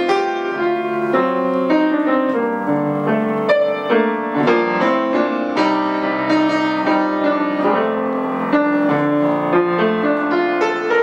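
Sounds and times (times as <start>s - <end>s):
grand piano chords and melody: 0.0s - 11.0s.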